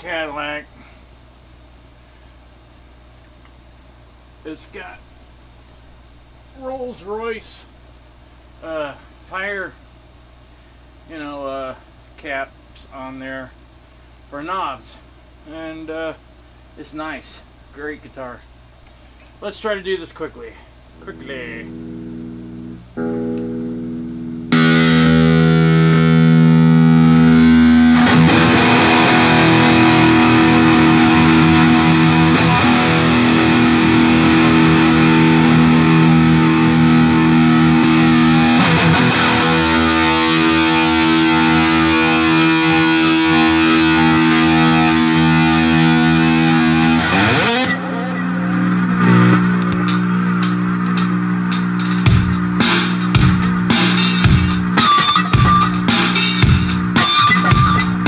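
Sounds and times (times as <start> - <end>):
distorted electric guitar: 21.0 - 58.0.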